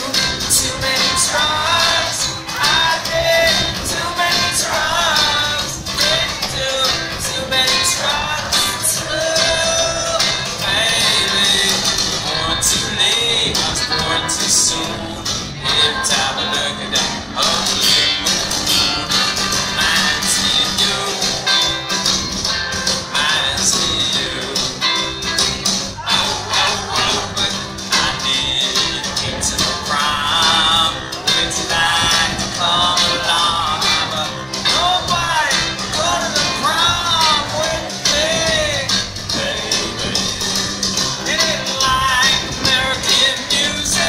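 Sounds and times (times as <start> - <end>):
acoustic guitar: 0.0 - 44.0
bass guitar: 0.0 - 44.0
drums: 0.0 - 44.0.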